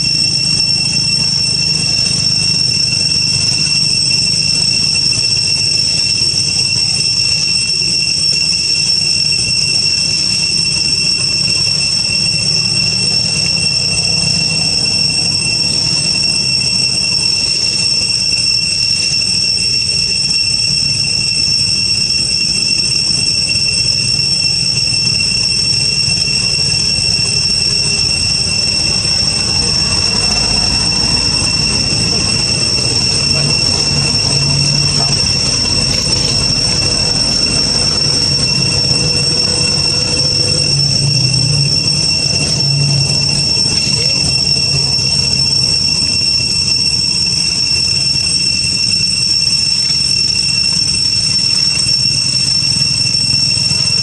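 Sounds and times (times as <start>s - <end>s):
cicadas droning: 0.0s - 54.0s.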